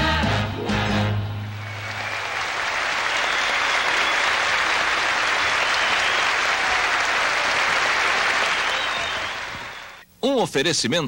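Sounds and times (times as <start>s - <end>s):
audience applauding: 1.5s - 10.0s.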